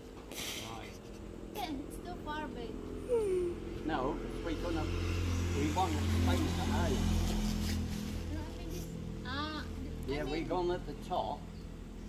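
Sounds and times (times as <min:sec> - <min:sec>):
motor vehicle passing: 0:00.0 - 0:12.0.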